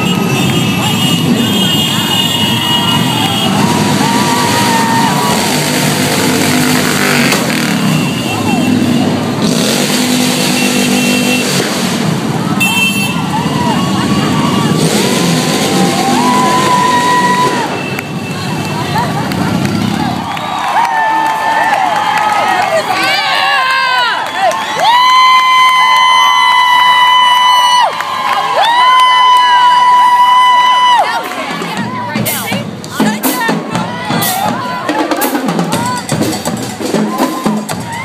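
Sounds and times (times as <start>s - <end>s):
crowd voices and shouts: 0.0s - 38.0s
motorcycles riding slowly past: 0.2s - 20.4s.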